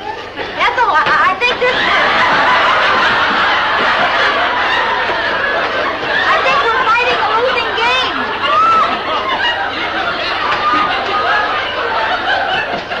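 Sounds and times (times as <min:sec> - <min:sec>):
audience laughing: 0:00.0 - 0:13.0.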